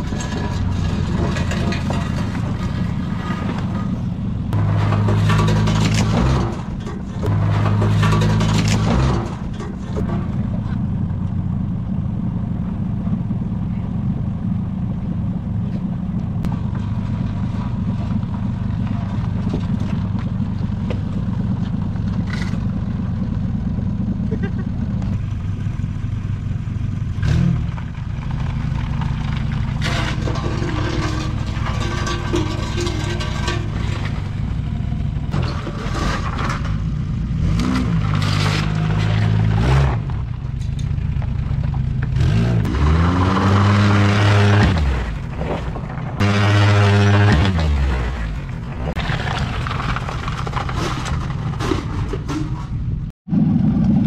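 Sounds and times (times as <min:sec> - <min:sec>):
vehicle engine revving: 0:15.7 - 0:50.9.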